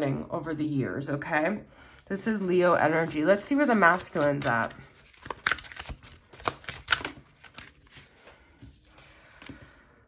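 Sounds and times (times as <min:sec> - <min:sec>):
card rustling: 0:02.9 - 0:09.7
cards being shuffled: 0:02.9 - 0:09.7.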